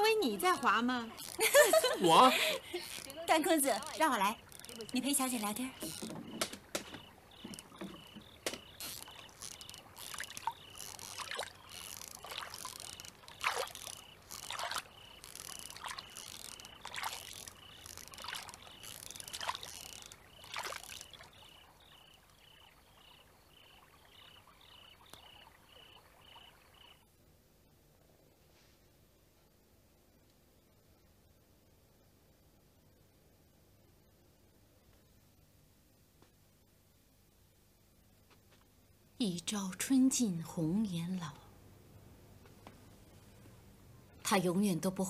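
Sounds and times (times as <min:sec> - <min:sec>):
oars splashing in water: 0:00.2 - 0:26.9.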